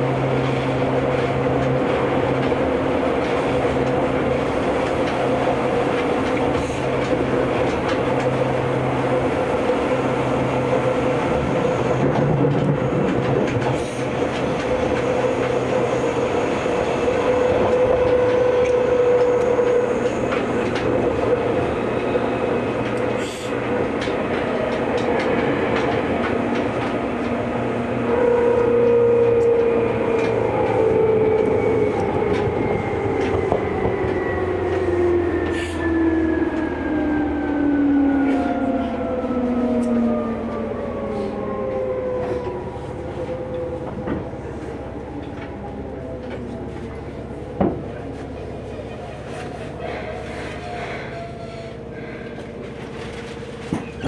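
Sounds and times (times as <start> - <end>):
train running noise and motor whine: 0.0 - 54.0
rail clacks: 0.2 - 36.7, 43.2 - 54.0.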